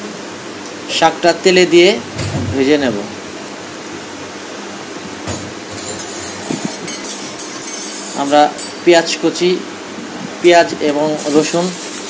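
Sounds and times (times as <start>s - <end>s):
oil sizzling and crackling: 3.1s - 9.1s, 10.9s - 12.0s.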